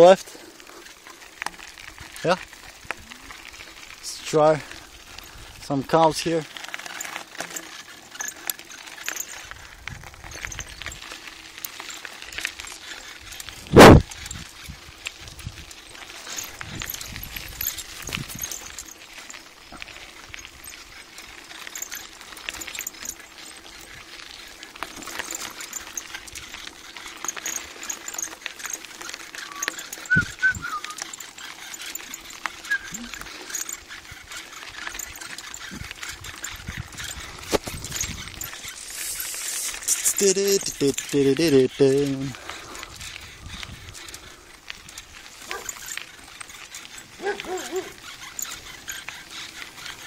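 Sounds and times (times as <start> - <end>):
bicycle tyres on gravel: 0.0 - 50.0.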